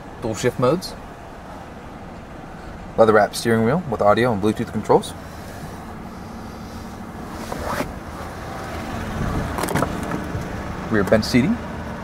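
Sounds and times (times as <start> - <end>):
truck engine idling: 4.4 - 12.0.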